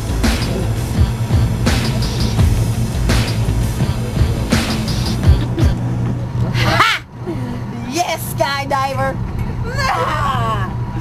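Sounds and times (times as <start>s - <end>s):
boat engine droning: 0.0s - 11.0s.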